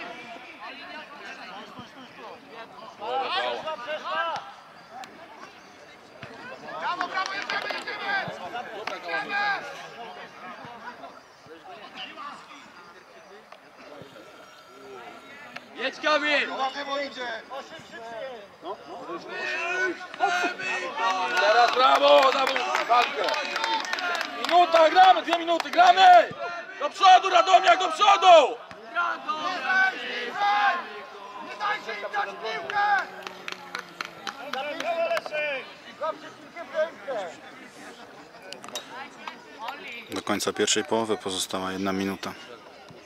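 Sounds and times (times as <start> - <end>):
voices shouting and calling: 0.0 - 43.0.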